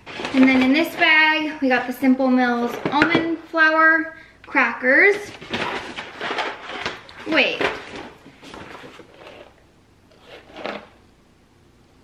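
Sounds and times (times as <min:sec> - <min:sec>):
paper bag rustling: 0:00.0 - 0:03.0, 0:05.1 - 0:09.6.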